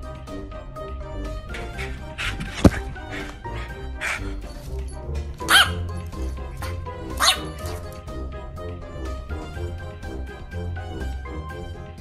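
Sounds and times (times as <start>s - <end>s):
background music: 0.0s - 12.0s
dog barking: 1.6s - 4.4s, 5.4s - 5.9s, 6.6s - 7.8s.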